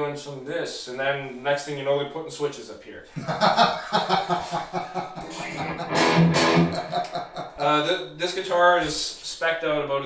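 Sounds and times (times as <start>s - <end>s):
electric guitar picked and strummed: 5.2s - 7.6s.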